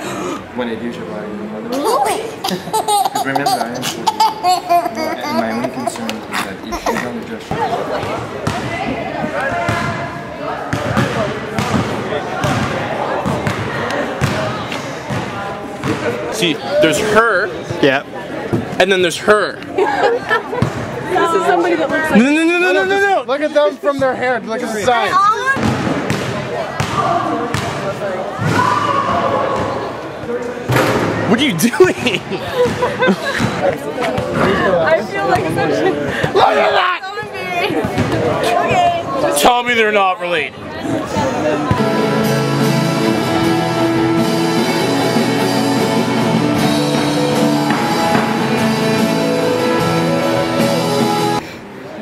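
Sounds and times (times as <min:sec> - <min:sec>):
people talking at once: 0:00.0 - 0:47.6.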